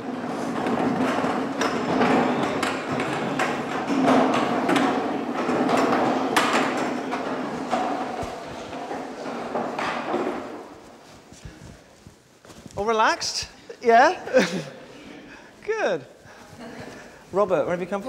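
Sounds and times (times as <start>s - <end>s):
chairs clattering on wooden floor: 0.0s - 12.8s.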